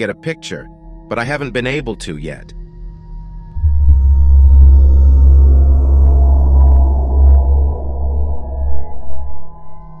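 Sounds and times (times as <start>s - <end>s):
ambient music drone: 0.0s - 10.0s.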